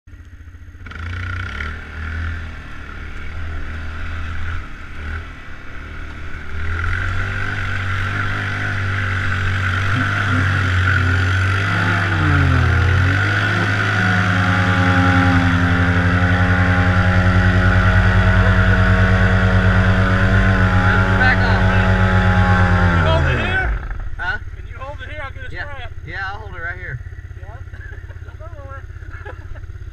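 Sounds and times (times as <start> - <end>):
atv engine revving: 0.1 - 29.9.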